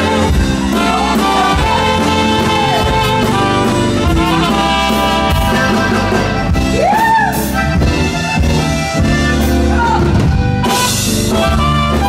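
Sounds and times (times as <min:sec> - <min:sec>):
live band playing: 0:00.0 - 0:12.0
trumpet melody: 0:00.0 - 0:12.0.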